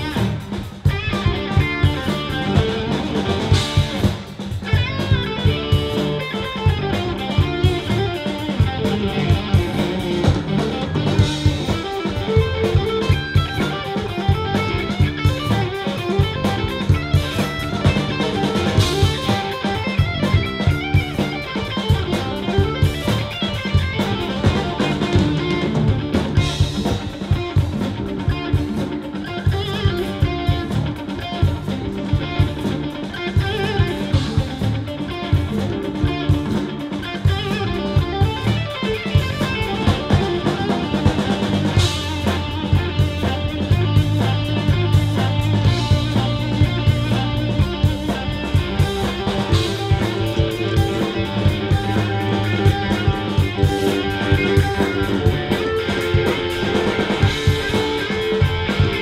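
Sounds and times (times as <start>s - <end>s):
electric bass guitar: 0.0s - 59.0s
electric guitar: 0.0s - 59.0s
drum kit hits: 39.2s - 59.0s.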